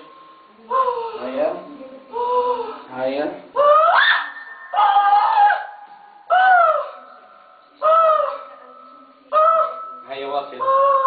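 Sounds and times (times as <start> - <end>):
woman wailing: 3.6 - 7.0.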